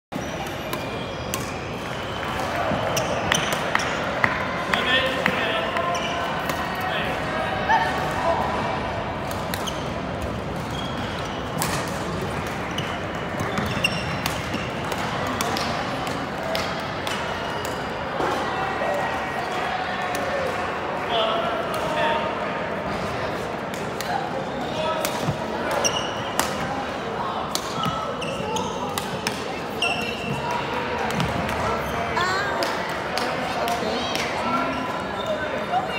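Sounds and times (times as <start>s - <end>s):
sneaker squeak on floor: 0.2s - 4.0s, 5.8s - 6.3s, 9.6s - 9.9s, 10.6s - 11.9s, 12.7s - 14.7s, 24.8s - 26.5s, 27.7s - 30.5s
hall chatter: 0.2s - 35.9s
rackets hitting shuttlecocks: 11.5s - 12.7s, 13.4s - 18.4s, 27.5s - 28.1s
shoe squeaks on wooden floor: 12.7s - 14.2s, 25.7s - 26.4s, 27.8s - 28.9s, 29.7s - 30.5s.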